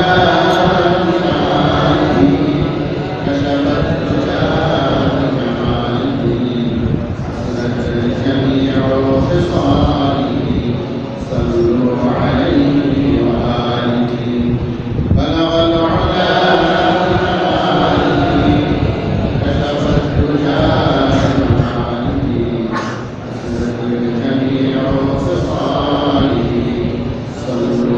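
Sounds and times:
person chanting: 0.0 - 27.9.

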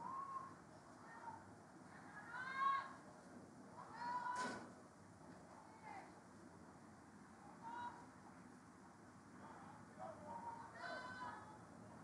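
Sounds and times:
distant high-pitched shouts: 0.0 - 3.0, 3.8 - 4.6, 7.5 - 8.1, 9.4 - 11.7
quiet outdoor ambience: 0.0 - 12.0.

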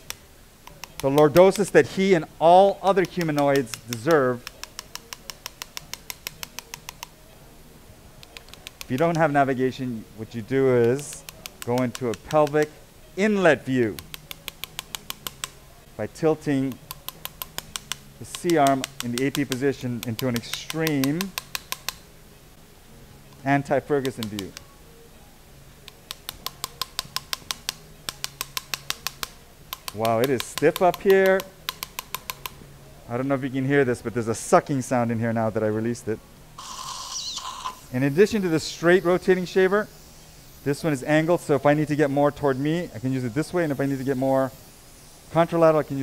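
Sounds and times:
rapid regular clicking: 2.9 - 7.1, 14.0 - 15.6, 16.7 - 22.0, 25.9 - 32.6.

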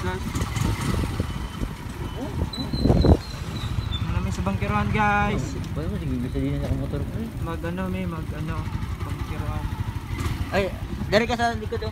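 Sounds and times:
wind buffeting microphone: 0.0 - 6.0.

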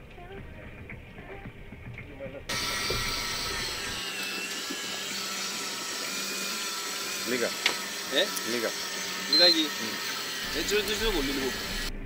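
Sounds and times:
electric fishing reel whirring: 2.5 - 12.0.

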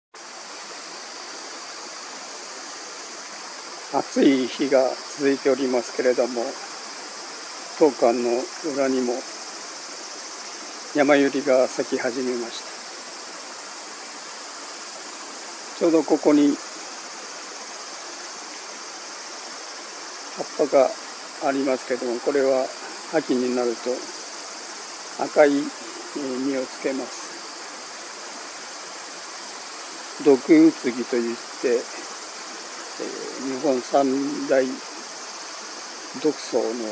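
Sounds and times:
high insect chorus: 0.2 - 36.9
outdoor rushing hiss: 0.2 - 36.9.

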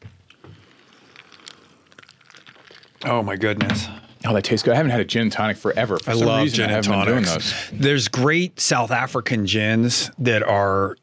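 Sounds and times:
person sipping a drink: 0.2 - 3.0.

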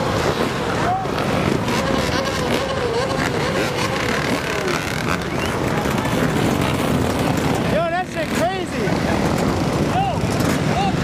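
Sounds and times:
dirt bike engines running: 0.0 - 11.0
engine revving: 0.0 - 11.0.

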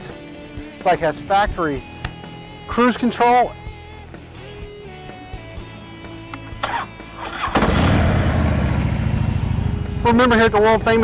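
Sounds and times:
motorcycle engine starting and running: 6.5 - 11.0.

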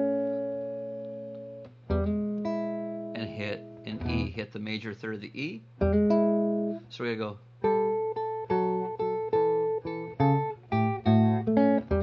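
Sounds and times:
electric guitar finger-picked notes: 0.0 - 4.4, 5.6 - 7.0, 7.6 - 12.0.

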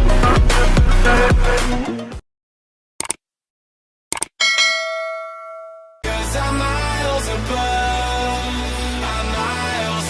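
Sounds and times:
notification bell ding: 4.4 - 6.0.

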